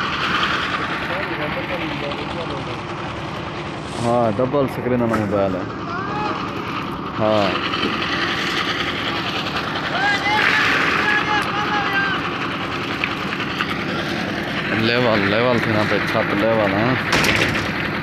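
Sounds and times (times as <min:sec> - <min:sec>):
engine drone: 0:00.0 - 0:18.0
voices calling out: 0:05.4 - 0:17.1.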